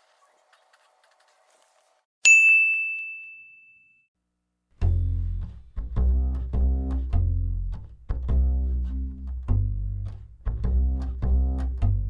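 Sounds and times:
bright bell ding: 0:02.2 - 0:04.1.

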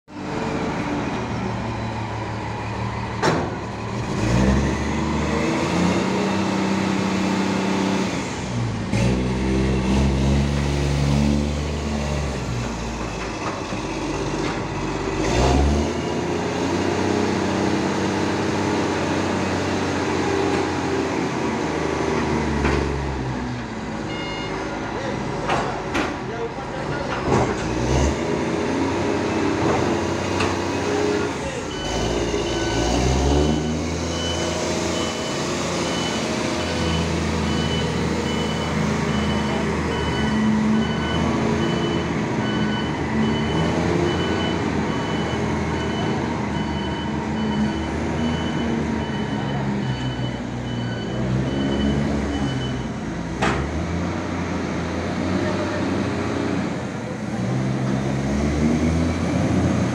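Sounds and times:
diesel engine revving and idling: 0:00.1 - 0:59.9.

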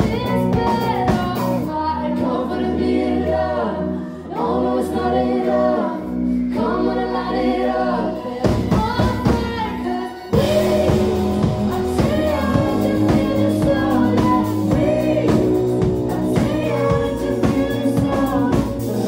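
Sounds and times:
live pop band playing: 0:00.0 - 0:03.9, 0:07.9 - 0:19.0
woman singing into a microphone: 0:00.0 - 0:19.0
sustained low synth and bass: 0:10.4 - 0:19.0.

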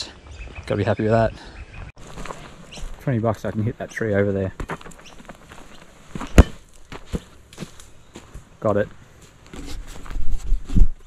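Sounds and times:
footsteps on dry leaves: 0:02.0 - 0:03.0, 0:04.8 - 0:08.5.

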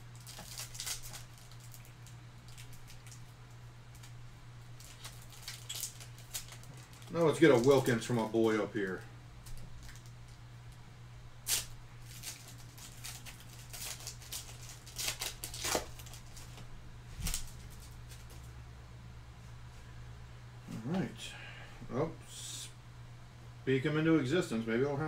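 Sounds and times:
foil wrapper crinkling: 0:00.0 - 0:10.8, 0:11.4 - 0:18.5
low electrical hum: 0:00.0 - 0:25.0.

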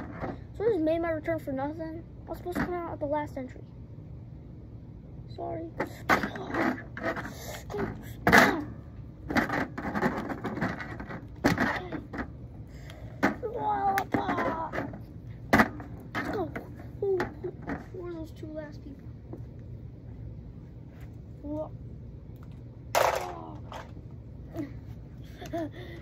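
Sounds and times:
boy's voice: 0:00.4 - 0:03.7, 0:05.3 - 0:06.8, 0:11.5 - 0:12.2, 0:13.3 - 0:15.0, 0:16.2 - 0:19.1, 0:21.4 - 0:21.8
plastic action figures knocking: 0:23.0 - 0:23.9.

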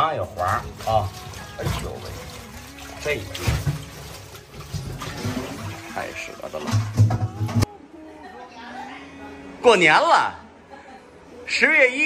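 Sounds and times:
water splashing in metal bowl: 0:00.0 - 0:07.7.

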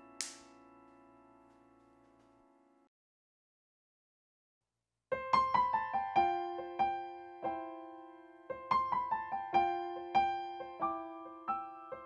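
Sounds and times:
hands slapping in a handshake: 0:00.0 - 0:00.6.

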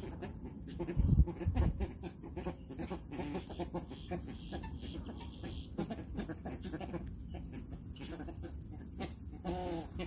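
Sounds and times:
birds low grunting calls: 0:00.0 - 0:10.0.

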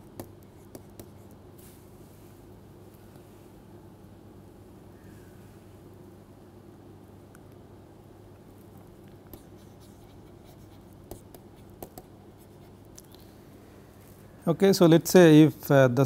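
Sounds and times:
low steady hum: 0:00.0 - 0:16.0
stylus tapping on tablet: 0:11.1 - 0:12.1.

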